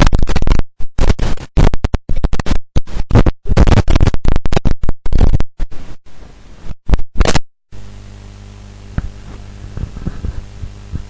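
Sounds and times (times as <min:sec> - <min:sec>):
electrical mains hum: 0:05.1 - 0:11.0.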